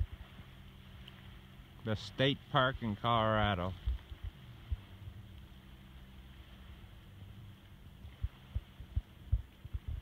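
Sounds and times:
muffled thumps on phone microphone: 8.2s - 10.0s.

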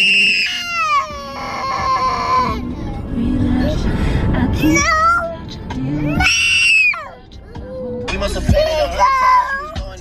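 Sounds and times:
toddler crying: 0.2s - 2.6s.

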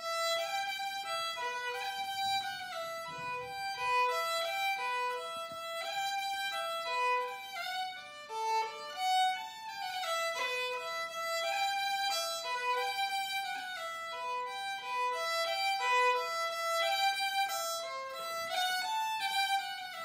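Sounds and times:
solo fiddle playing a reel: 0.0s - 20.0s.

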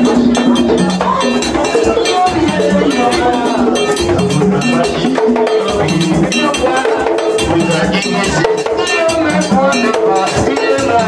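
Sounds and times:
hand drums: 0.0s - 11.0s
people singing: 0.0s - 11.0s.

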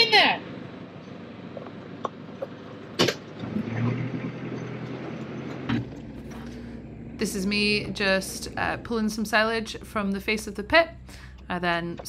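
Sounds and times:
engine running: 0.0s - 12.0s
low hum: 0.0s - 12.0s.

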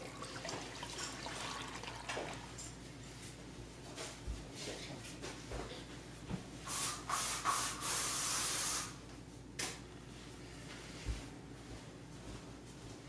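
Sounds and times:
hissing spray spurts: 6.7s - 8.9s.

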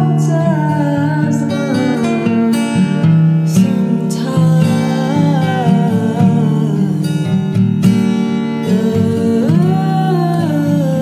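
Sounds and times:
fingerpicked acoustic guitar: 0.0s - 11.0s
woman singing wordless line: 0.0s - 11.0s.

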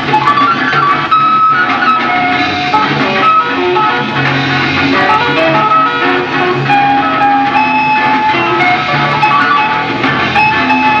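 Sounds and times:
rock band playing: 0.0s - 11.0s
steady bass line: 0.0s - 11.0s.

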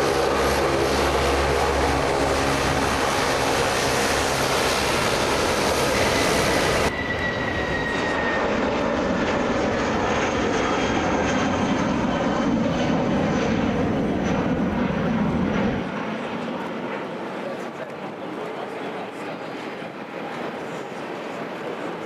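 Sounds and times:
jet engines at takeoff thrust: 0.0s - 22.0s.

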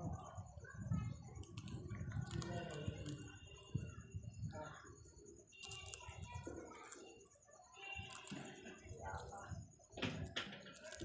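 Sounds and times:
parakeet beak crunching food: 1.2s - 3.9s, 5.5s - 11.0s.

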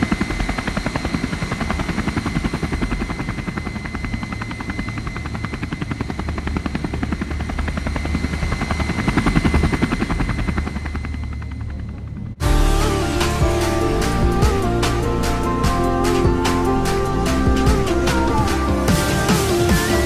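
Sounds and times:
helicopter rotor chop: 0.0s - 20.0s
turbine whine: 0.0s - 20.0s.

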